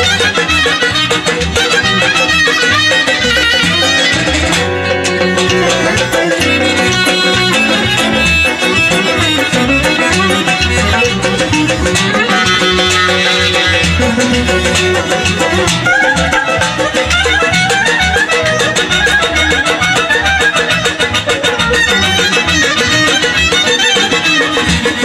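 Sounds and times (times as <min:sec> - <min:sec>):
clarinet folk dance tune: 0:00.0 - 0:25.0
frame drum beat: 0:00.0 - 0:25.0.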